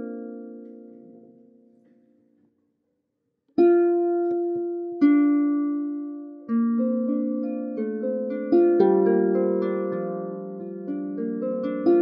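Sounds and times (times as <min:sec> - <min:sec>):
plucked harp chords: 0:03.6 - 0:12.0.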